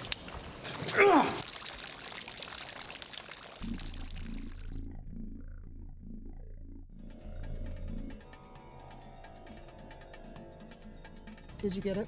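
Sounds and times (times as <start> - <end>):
fountain water pouring: 0.0 - 4.8
low music with slow pulse: 4.0 - 11.6.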